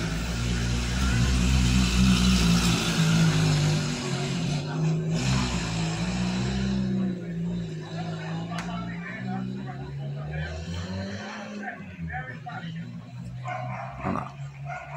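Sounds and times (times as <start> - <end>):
road noise: 0.0 - 14.9
vehicle engine running: 0.0 - 14.9.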